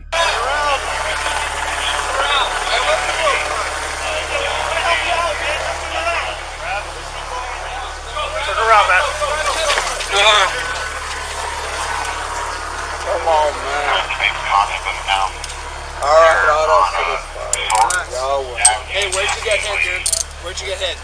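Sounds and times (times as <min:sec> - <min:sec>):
people talking and calling out: 0:00.0 - 0:21.0
steady low hum: 0:00.0 - 0:21.0.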